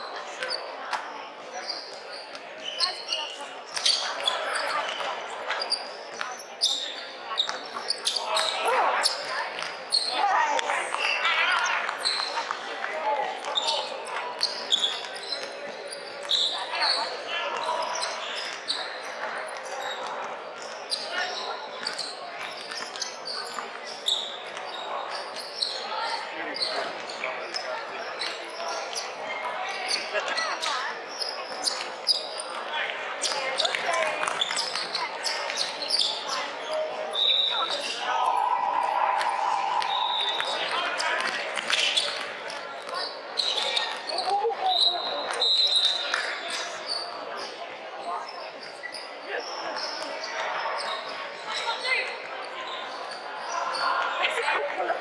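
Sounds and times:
indistinct shouting and chatter: 0:00.0 - 0:55.0.

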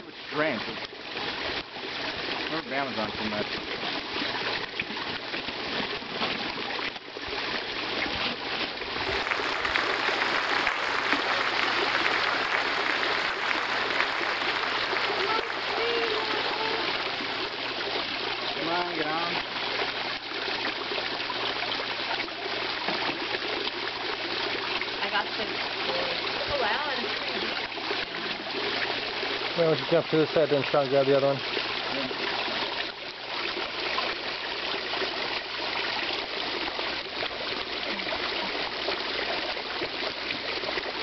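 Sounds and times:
water pouring out of bag: 0:09.0 - 0:18.5
splashing water: 0:09.0 - 0:24.4.

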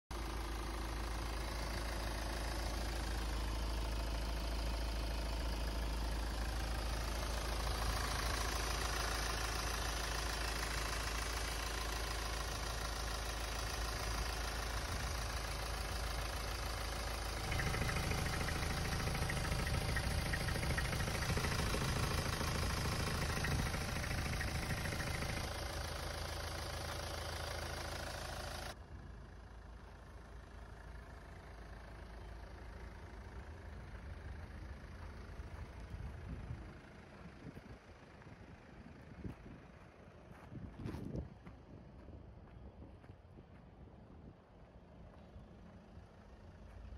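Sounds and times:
diesel engine idling: 0:00.1 - 0:46.9.

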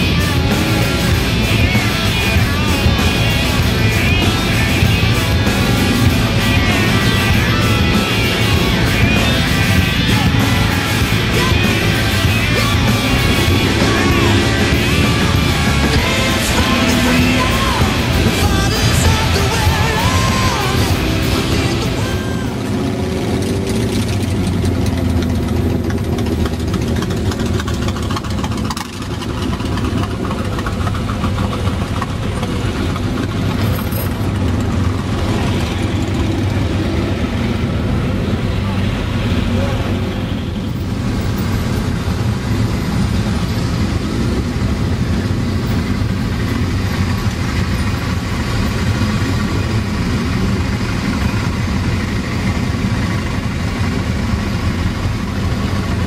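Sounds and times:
motorcycle engines idling: 0:00.0 - 0:56.0.

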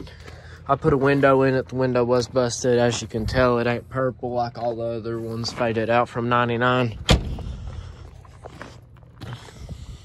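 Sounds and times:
footsteps on rough ground: 0:00.0 - 0:10.0.

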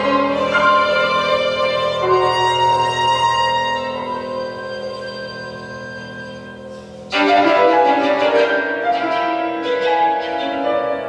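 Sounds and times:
piano: 0:00.0 - 0:11.0
violin: 0:00.0 - 0:11.0.

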